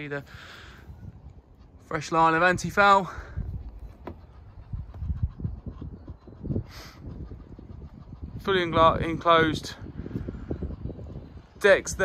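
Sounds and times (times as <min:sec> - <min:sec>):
wind rumbling on microphone: 0:00.0 - 0:12.0
microphone handling noise: 0:03.4 - 0:05.8.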